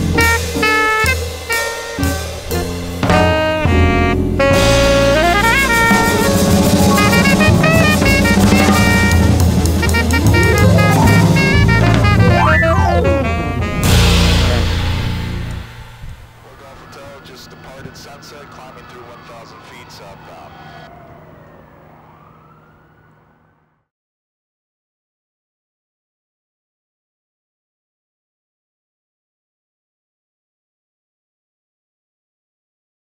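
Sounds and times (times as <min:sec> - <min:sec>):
bass line: 0:00.0 - 0:01.2, 0:02.0 - 0:16.0
saxophone melody: 0:00.0 - 0:15.6
keyboard melody: 0:00.0 - 0:15.9
drum kit with cymbals: 0:00.0 - 0:16.2
emergency siren wailing: 0:04.6 - 0:14.0, 0:16.3 - 0:23.9.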